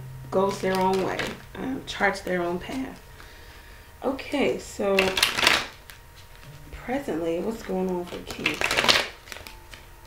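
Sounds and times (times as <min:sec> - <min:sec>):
cards being shuffled: 0:00.4 - 0:01.5, 0:02.2 - 0:03.3, 0:05.0 - 0:06.6, 0:07.5 - 0:09.9.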